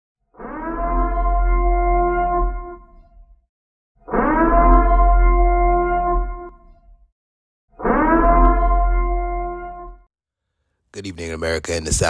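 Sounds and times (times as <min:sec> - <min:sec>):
synthesized tone with deep bass: 0:00.4 - 0:03.4, 0:04.1 - 0:07.1, 0:07.8 - 0:10.0.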